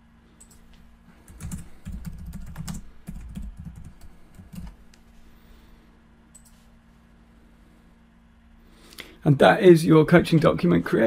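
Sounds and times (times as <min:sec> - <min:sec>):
typing on computer keyboard: 0:01.3 - 0:04.8.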